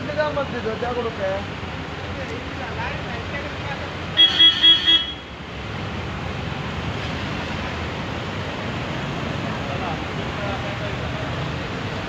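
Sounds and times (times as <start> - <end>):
low hum of traffic: 0.0 - 12.0
vehicle horn honking: 4.2 - 5.4.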